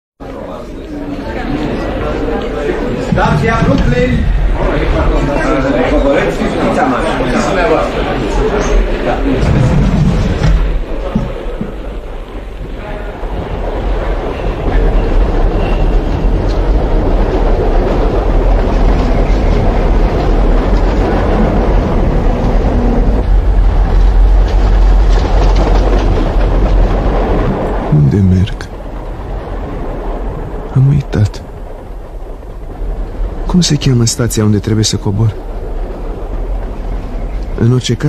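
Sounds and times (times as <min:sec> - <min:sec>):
subway train rumbling and rattling: 0:00.2 - 0:38.0.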